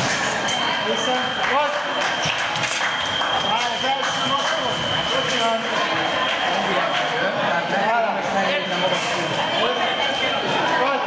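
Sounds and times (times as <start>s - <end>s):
high-pitched electronic tone: 0.0s - 11.0s
people talking in a large hall: 0.0s - 11.0s.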